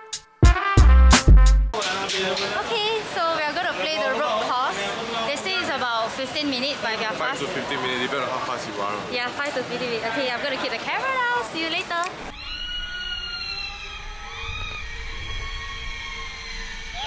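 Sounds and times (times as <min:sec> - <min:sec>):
wavering cries: 0:12.3 - 0:17.0.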